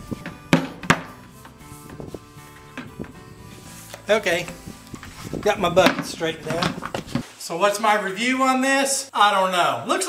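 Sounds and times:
background music with held notes: 0.0s - 7.2s.

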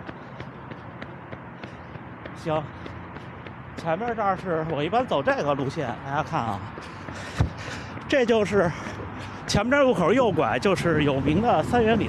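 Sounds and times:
running footfalls on pavement: 0.0s - 10.8s.

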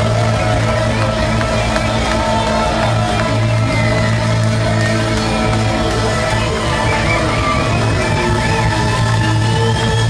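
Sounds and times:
low bass line: 0.0s - 10.0s
saxophone: 0.0s - 10.0s.

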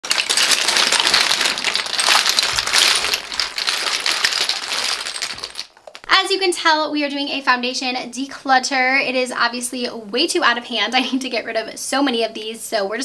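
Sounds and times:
plastic and glass bottles clattering: 0.0s - 6.0s.

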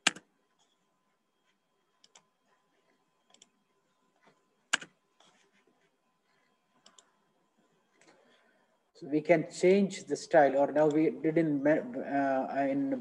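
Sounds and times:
computer mouse clicks: 0.0s - 0.8s, 2.0s - 2.3s, 3.2s - 3.6s, 4.2s - 5.4s, 6.8s - 7.2s.

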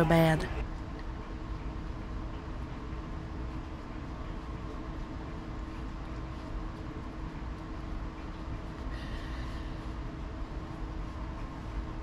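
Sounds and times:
faint constant tone: 0.0s - 12.0s
low hum and hiss: 0.0s - 12.0s.

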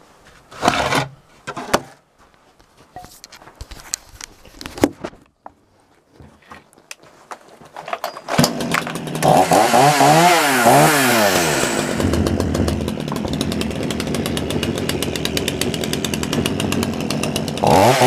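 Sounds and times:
chainsaw engine revving and idling: 8.3s - 18.0s.

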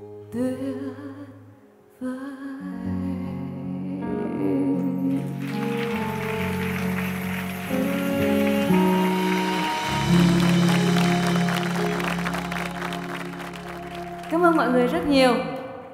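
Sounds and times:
live pop band playing: 5.1s - 15.3s
audience applauding: 5.2s - 15.0s.

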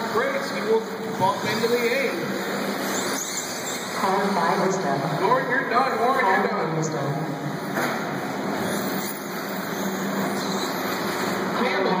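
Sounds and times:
rc buggy raceway din: 0.0s - 12.0s.

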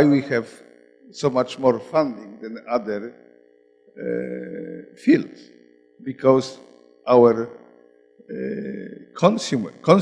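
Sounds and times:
man speaking: 0.0s - 3.1s, 4.0s - 5.4s, 6.0s - 7.5s, 8.3s - 10.0s
man's drawn-out hesitation sound: 0.0s - 3.1s, 4.0s - 5.4s, 6.0s - 7.5s, 8.3s - 10.0s.

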